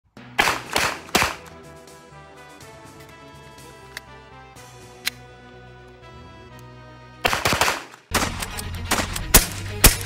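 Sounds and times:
background music: 0.1 - 10.0
pistol shots: 0.3 - 1.5, 7.2 - 10.0.

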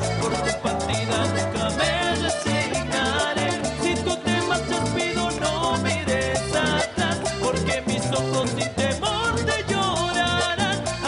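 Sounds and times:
live cumbia band: 0.0 - 11.0
man singing into microphone: 0.0 - 11.0.

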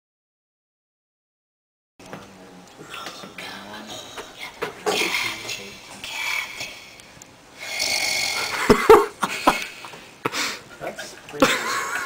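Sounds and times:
rough breathy vocal noises: 2.8 - 7.0, 7.6 - 10.7.

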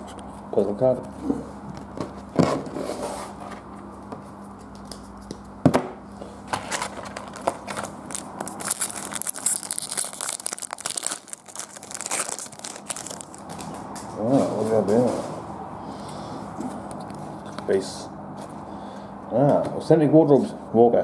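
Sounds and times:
foil wrapper tearing and crinkling: 6.6 - 13.8.

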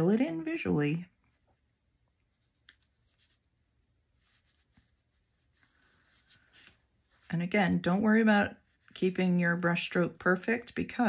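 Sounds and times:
paintbrush strokes on paper: 0.4 - 11.0.

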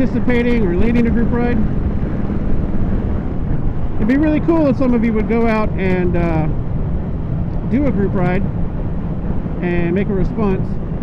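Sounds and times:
motorcycle engine cruising: 0.0 - 11.0
wind on microphone: 0.0 - 11.0.

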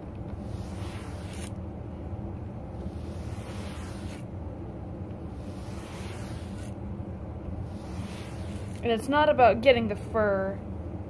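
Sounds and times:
steady low rumble: 0.0 - 11.0
brush scratch: 0.3 - 1.6, 2.7 - 4.4, 5.2 - 6.8, 7.6 - 9.1
brush swishing through fur: 0.3 - 1.6, 2.7 - 4.3, 5.2 - 6.8, 7.6 - 9.0.

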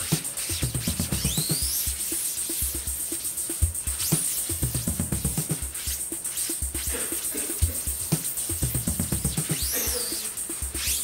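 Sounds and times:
electronic music with drum beat: 0.0 - 11.0.

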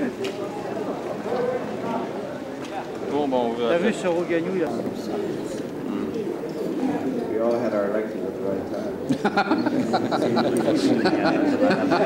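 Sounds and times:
men talking over one another: 0.0 - 9.1.

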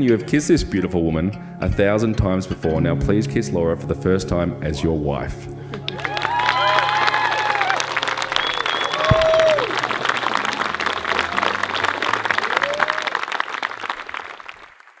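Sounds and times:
crowd clapping and cheering: 5.7 - 15.0
whoops and shouted calls: 5.9 - 13.2.

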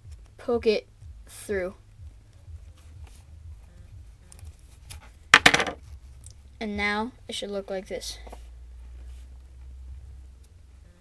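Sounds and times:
quiet handling of cord and buckle: 8.2 - 9.8.

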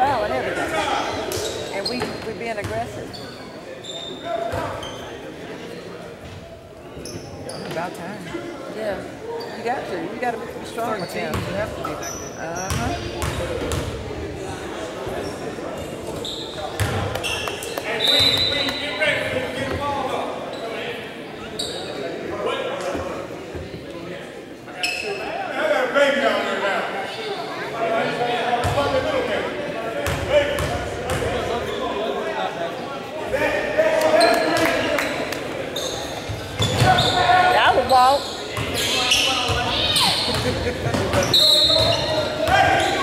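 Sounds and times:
murmuring voices: 0.0 - 43.0
sneaker squeak on hardwood floor: 1.1 - 5.2, 7.0 - 8.0, 16.1 - 18.7, 35.8 - 43.0.

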